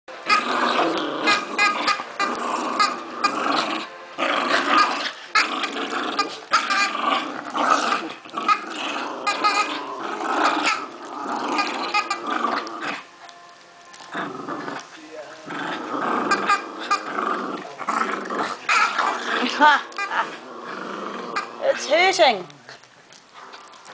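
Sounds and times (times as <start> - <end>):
small dogs growling: 0.2 - 13.1, 13.9 - 23.9.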